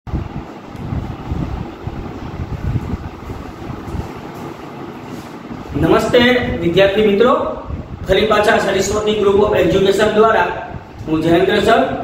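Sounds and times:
low rumbling background noise: 0.1 - 12.0.

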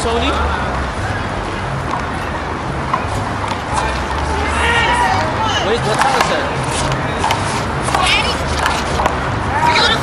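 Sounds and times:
people talking outdoors: 0.0 - 10.0.

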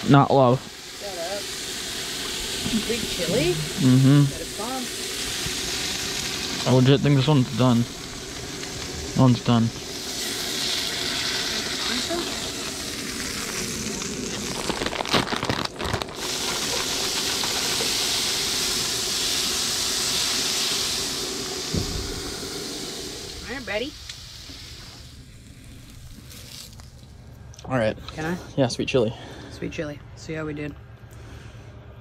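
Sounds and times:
vegetables sizzling in frying pan: 0.0 - 27.2.

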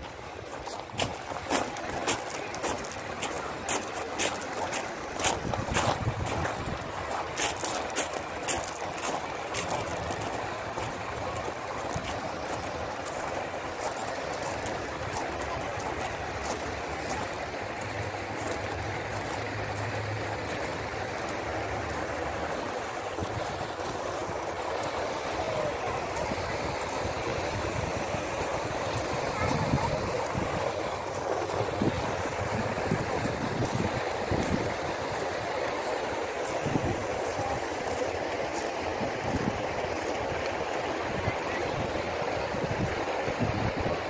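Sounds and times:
fountain jets splashing water: 0.0 - 44.0
people's voices: 0.4 - 44.0.

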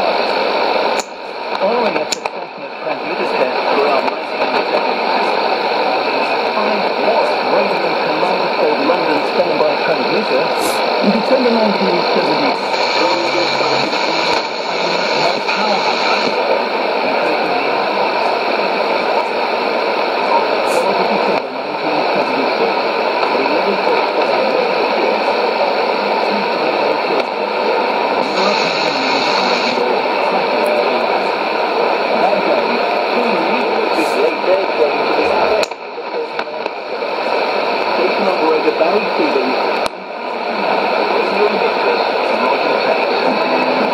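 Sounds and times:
faint radio voice: 0.0 - 43.9
steady radio hiss: 0.0 - 43.9.

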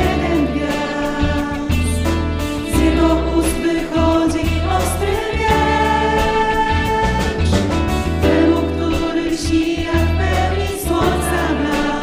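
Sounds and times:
women singing together: 0.0 - 2.0, 2.6 - 7.6, 8.2 - 12.0
drums: 0.0 - 12.0
electric guitar: 0.0 - 12.0
low bass line: 0.0 - 12.0.

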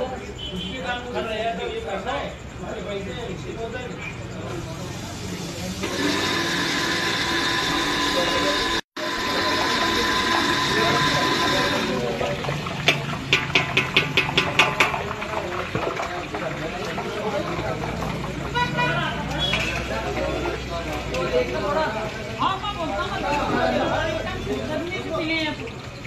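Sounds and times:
machine high whine: 5.8 - 12.1.

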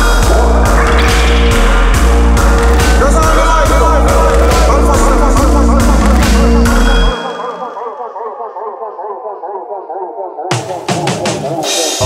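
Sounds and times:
bass and drums: 0.0 - 7.2
warbling metallic echo delay: 0.0 - 10.9.

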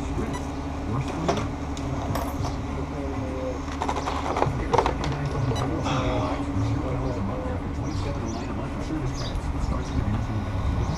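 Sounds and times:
faint voices: 0.0 - 10.9
steady low hum: 0.0 - 10.9.

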